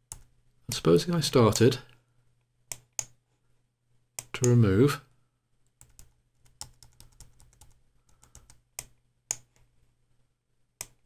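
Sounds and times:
computer mouse clicks: 2.7s - 3.2s, 5.7s - 9.7s, 10.8s - 11.0s.

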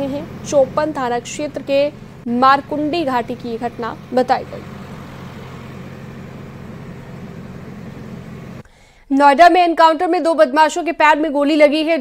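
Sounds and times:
vehicle engine idling hum: 0.0s - 8.6s.

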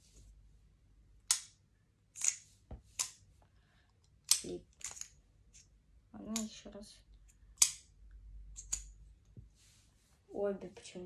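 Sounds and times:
soft rustle: 9.3s - 11.0s.

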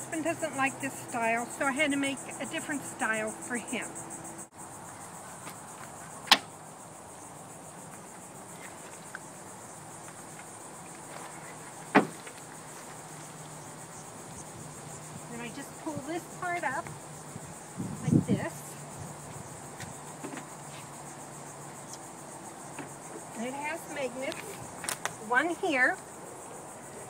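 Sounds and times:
insect chorus buzzing: 0.0s - 27.0s
van door knocks: 11.9s - 12.2s.

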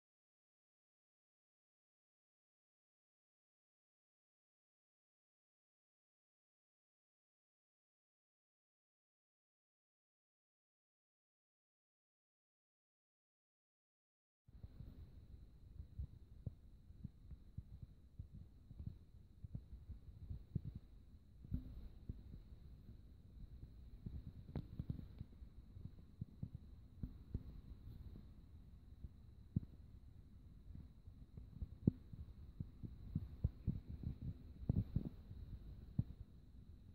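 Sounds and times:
faint high-pitched whine: 14.6s - 36.9s.

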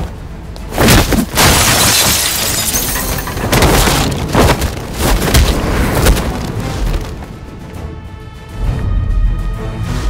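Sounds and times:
shattering crash of debris: 0.8s - 7.1s.

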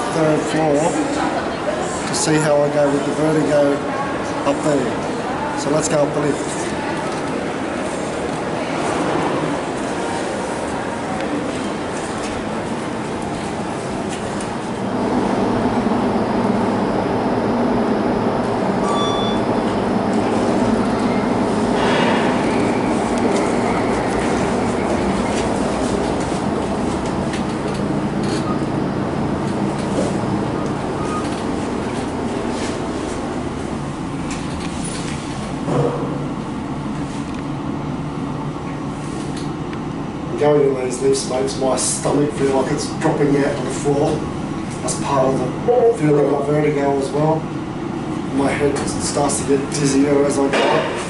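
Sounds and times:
lift mechanical rumble and hum: 0.0s - 51.0s.

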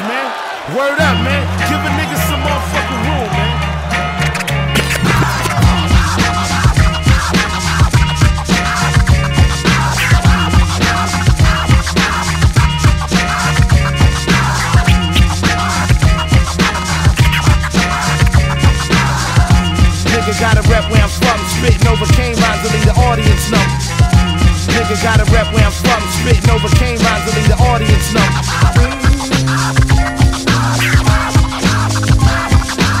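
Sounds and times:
hip hop beat: 0.9s - 33.0s
held bass line: 1.0s - 33.0s
turntable scratching: 4.3s - 23.7s, 24.7s - 33.0s.

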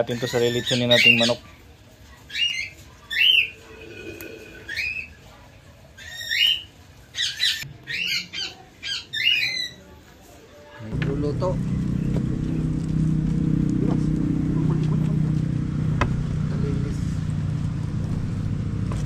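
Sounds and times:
steady low hum: 10.9s - 19.0s.

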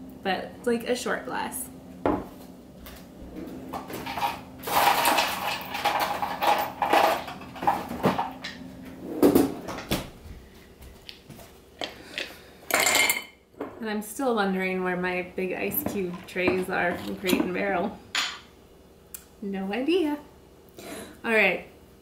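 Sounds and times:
ice cubes clinking into glass: 4.1s - 7.3s.

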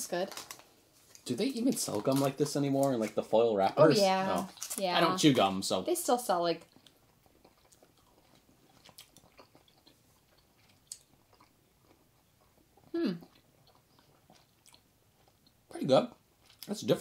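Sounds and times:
faint gum chewing: 6.6s - 16.8s.

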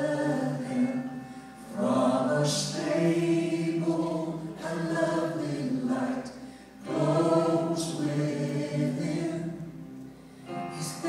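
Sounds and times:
vocal group singing in harmony: 0.0s - 11.0s.

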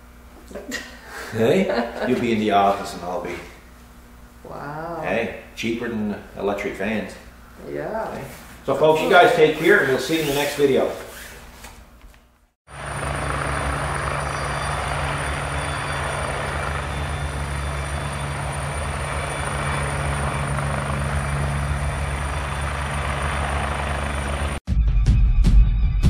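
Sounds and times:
mechanical drone with high whine: 12.7s - 24.6s.

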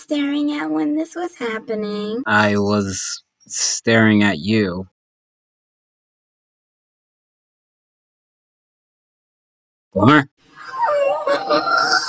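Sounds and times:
cartoon vocal exclamation: 2.3s - 4.2s
wavering cartoon voice: 2.3s - 4.7s, 10.0s - 12.0s
cartoon laughter: 10.6s - 12.0s.

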